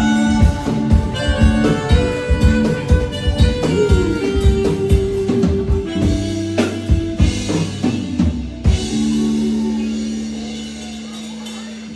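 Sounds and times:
drum kit playing fills: 0.0s - 11.9s
keyboard chords: 0.0s - 11.9s.

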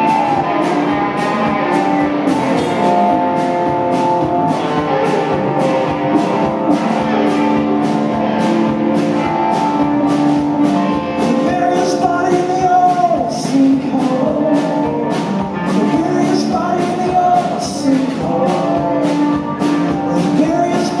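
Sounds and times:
drum beat: 0.0s - 21.0s
electric guitars: 0.0s - 21.0s.

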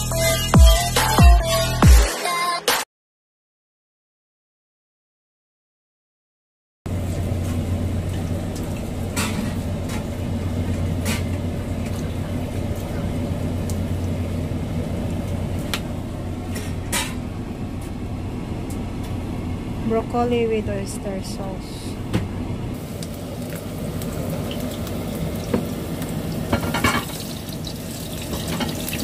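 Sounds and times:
steady low hum: 6.9s - 26.4s.

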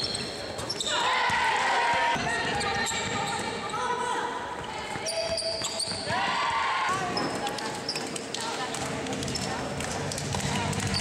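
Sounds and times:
sneakers squeaking on court: 0.0s - 1.1s, 2.1s - 6.2s, 7.0s - 8.2s.

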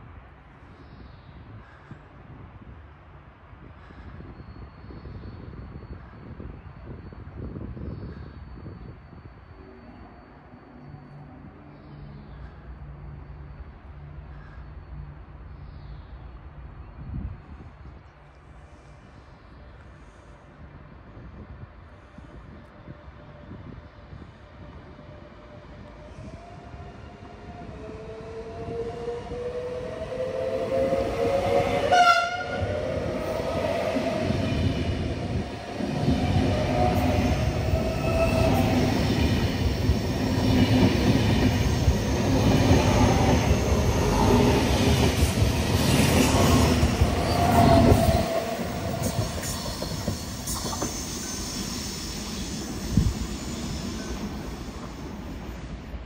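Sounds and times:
electric train rumble and whine: 0.0s - 56.0s
train horn: 30.4s - 32.9s.

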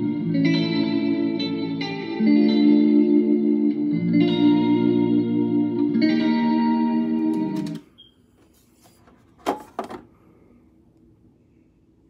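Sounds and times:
surf guitar music through speakers: 0.0s - 7.8s.

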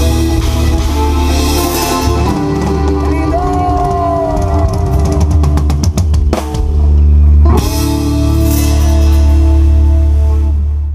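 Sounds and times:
rock band playing live: 0.0s - 10.9s
drum fill: 1.4s - 7.0s.

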